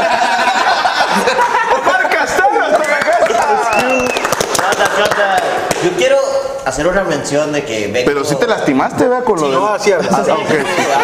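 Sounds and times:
men laughing and talking: 0:00.0 - 0:06.1, 0:08.5 - 0:11.0.

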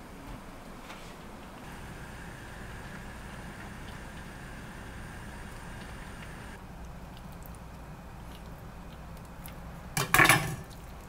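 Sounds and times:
kitchenware clattering on counter: 0:10.0 - 0:10.7.

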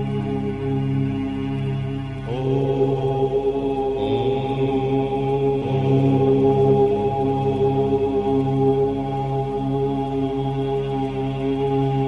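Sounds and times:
voices chanting om drone: 0:00.0 - 0:12.0.

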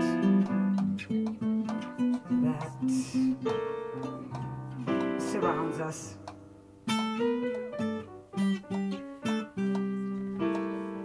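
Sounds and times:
acoustic guitar plucked and strummed: 0:00.0 - 0:11.0
electric keyboard holding notes: 0:00.0 - 0:11.0.

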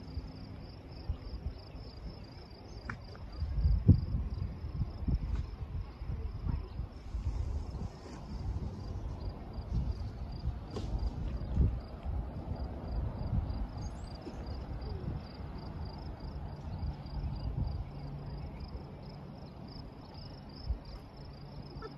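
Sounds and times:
gusty wind: 0:00.0 - 0:21.9.

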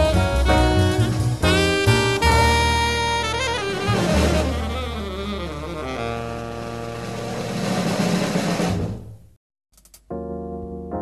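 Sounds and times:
jazz jingle with saxophone and brass: 0:00.0 - 0:08.6.

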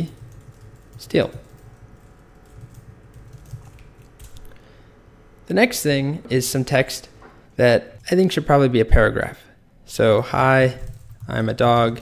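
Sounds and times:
computer keyboard typing: 0:00.0 - 0:04.6, 0:10.8 - 0:12.0.

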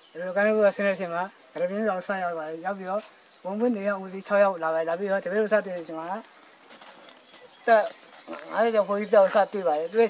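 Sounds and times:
man speaking: 0:00.2 - 0:06.3, 0:07.6 - 0:10.0.

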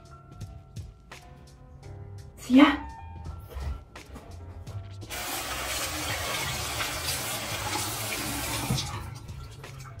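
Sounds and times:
tap water running into sink: 0:05.1 - 0:10.0.

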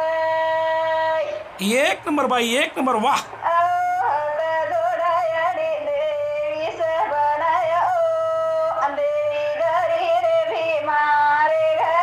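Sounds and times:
woman singing in a high voice: 0:03.3 - 0:12.0.

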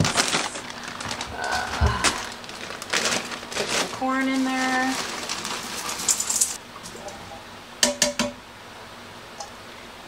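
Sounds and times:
corn rattling into steel pot: 0:02.9 - 0:06.6.

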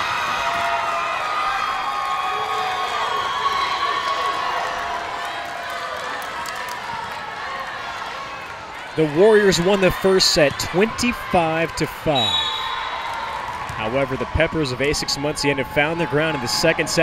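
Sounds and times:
crowd cheering and shouting: 0:00.0 - 0:17.0.

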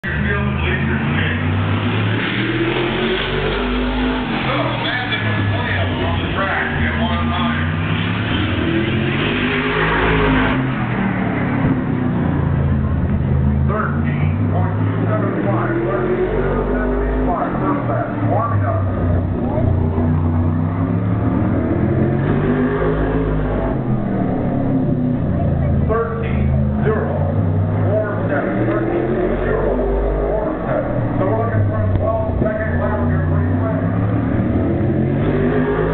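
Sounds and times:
race car engine at speed: 0:00.0 - 0:35.9.

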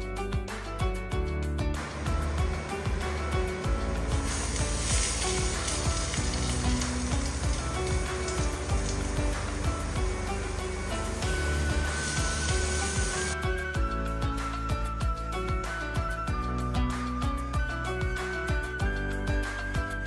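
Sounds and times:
background music: 0:00.0 - 0:20.0
bread sizzling in a pan: 0:04.1 - 0:13.4.

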